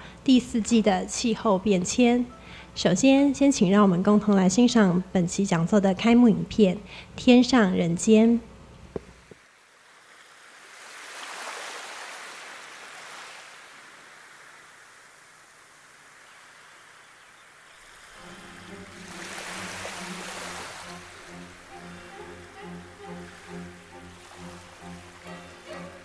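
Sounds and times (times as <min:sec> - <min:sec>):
surf washing onto shore: 0:09.9 - 0:17.0, 0:17.7 - 0:22.1
slow bowed-string music: 0:18.1 - 0:26.0.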